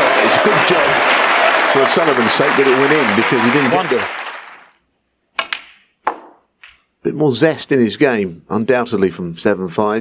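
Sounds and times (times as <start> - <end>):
audience applause: 0.0 - 4.8.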